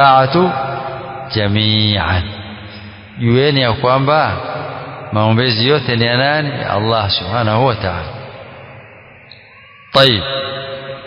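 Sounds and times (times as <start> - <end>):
man chanting: 0.0 - 8.2, 10.0 - 10.6.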